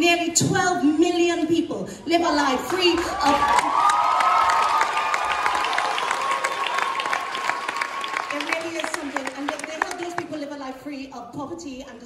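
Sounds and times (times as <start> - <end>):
audience clapping: 2.6 - 10.4
person cheering: 2.9 - 8.9.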